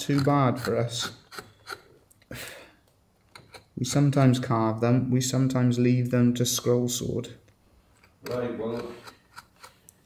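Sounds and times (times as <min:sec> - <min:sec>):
carving blade scraping wood: 0:00.0 - 0:02.0, 0:08.0 - 0:09.8.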